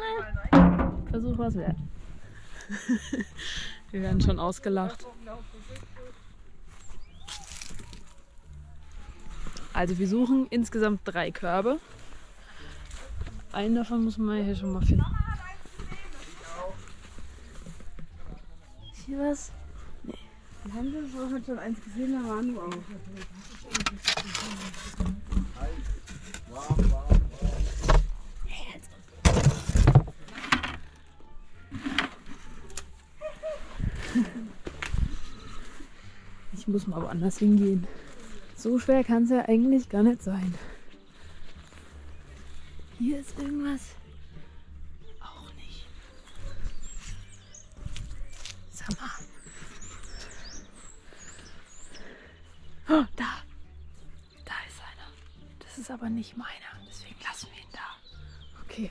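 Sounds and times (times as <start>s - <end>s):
small birds chirping: 3.5s - 26.7s, 32.7s - 58.9s
wooden board scraping on stones: 22.4s - 28.3s, 29.2s - 31.0s, 31.7s - 32.8s.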